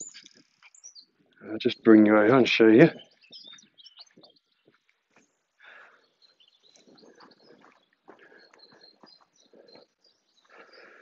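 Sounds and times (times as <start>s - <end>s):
distant bird chirps: 0.0s - 11.0s.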